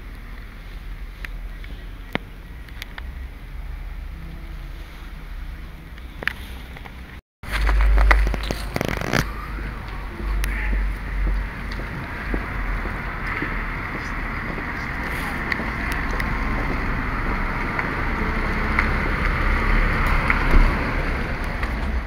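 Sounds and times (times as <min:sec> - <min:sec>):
street noise: 0:00.0 - 0:22.0
wind buffeting microphone: 0:00.0 - 0:22.0.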